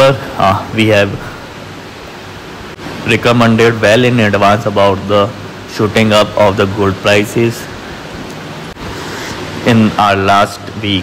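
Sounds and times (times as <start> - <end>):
man speaking: 0.0 - 1.5, 3.0 - 7.8, 9.6 - 11.0
steady background hiss: 0.0 - 11.0.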